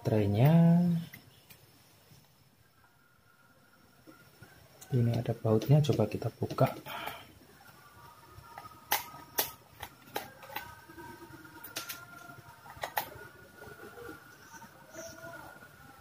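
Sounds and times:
faint steady background: 0.0 - 16.0.

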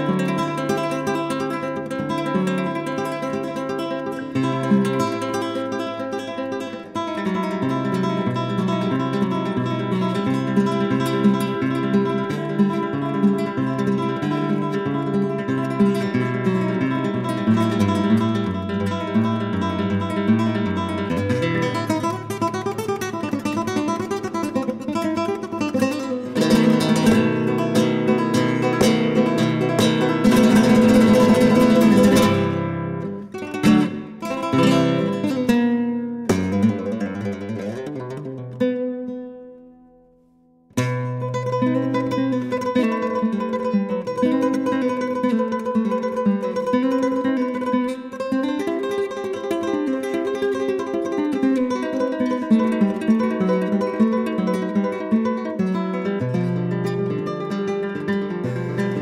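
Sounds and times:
acoustic guitar music: 0.0 - 59.0.

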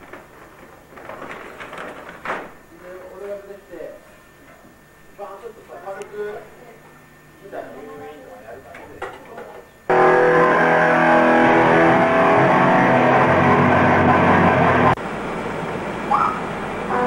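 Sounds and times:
loud rock music with electric guitar: 9.9 - 15.0.

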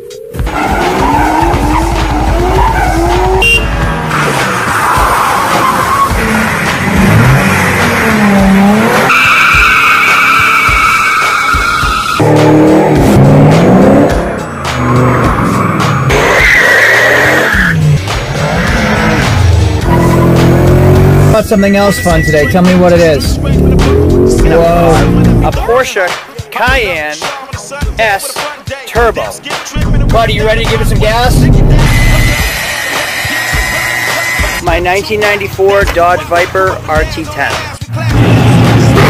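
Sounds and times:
background music: 0.0 - 39.0
car engines revving: 0.4 - 25.6, 37.9 - 39.0
tyres squealing: 0.5 - 12.2, 19.8 - 25.5.

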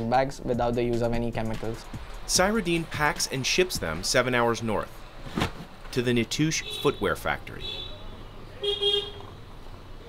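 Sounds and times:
low street noise: 0.0 - 10.0
vehicle horn toot: 6.5 - 9.3.

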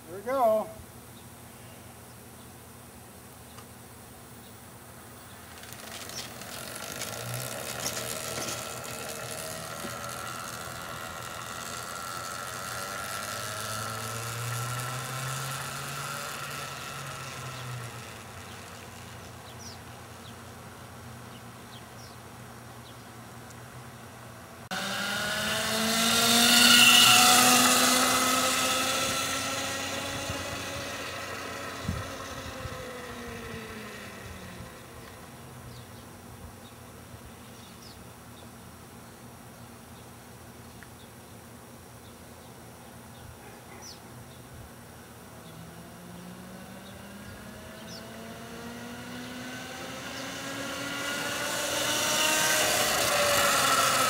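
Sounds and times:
electric motorcycle chain whine: 5.0 - 21.4, 24.7 - 36.0, 45.0 - 54.0.

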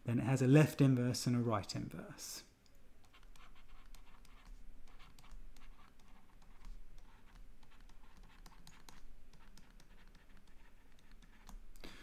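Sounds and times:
stylus tapping and scratching on screen: 0.7 - 1.8, 2.6 - 11.9.

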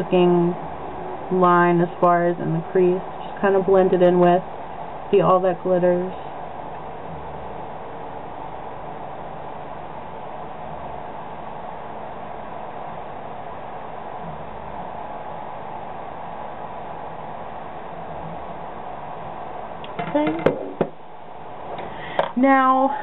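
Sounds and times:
faint hum: 0.0 - 23.0
steady background hiss: 0.0 - 23.0.

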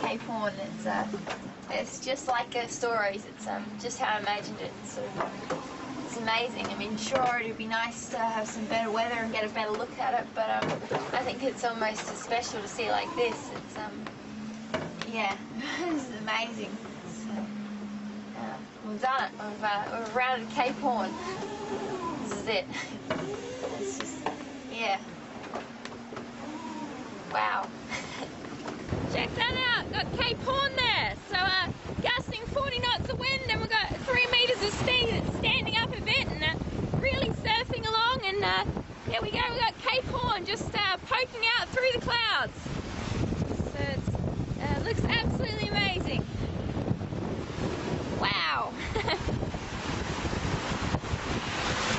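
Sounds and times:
low steady hum: 0.0 - 51.5
gale-force wind: 0.0 - 51.9
rough sea: 0.0 - 51.9.

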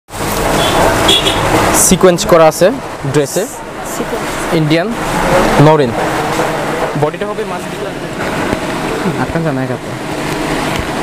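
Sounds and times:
traffic din: 0.1 - 11.0.

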